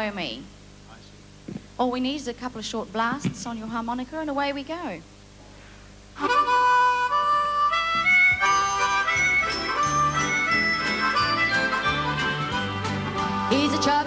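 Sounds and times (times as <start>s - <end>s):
band with bouncing bass line: 6.2s - 14.0s
harmonica notes: 6.2s - 14.0s.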